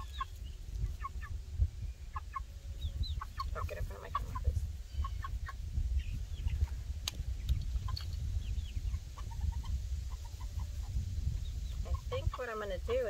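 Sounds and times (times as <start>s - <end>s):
chicks peeping and clucking: 0.0s - 13.0s
steady low rumble: 0.0s - 13.0s.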